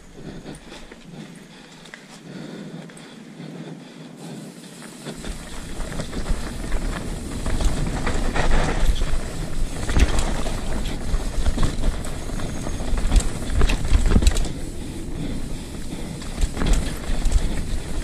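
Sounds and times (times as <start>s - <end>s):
wind buffeting microphone: 3.5s - 18.0s
bike rattling over rough ground: 4.1s - 18.0s.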